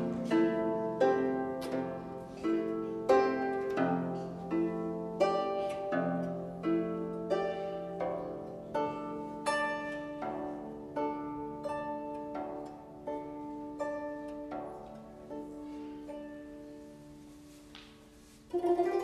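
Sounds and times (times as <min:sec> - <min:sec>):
plucked zither notes ringing: 0:00.0 - 0:17.7, 0:18.4 - 0:19.0.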